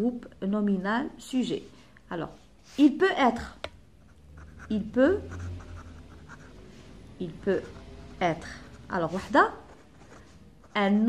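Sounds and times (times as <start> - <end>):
pen scratching on paper: 4.1 - 6.7, 7.3 - 11.0.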